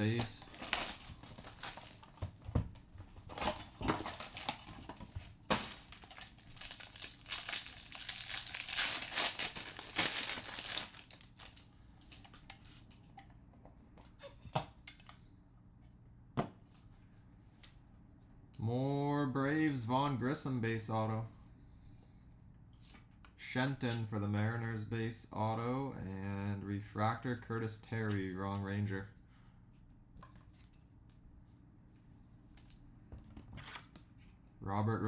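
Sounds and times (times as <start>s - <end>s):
foil wrapper crinkling: 0.0s - 2.2s, 3.4s - 12.4s.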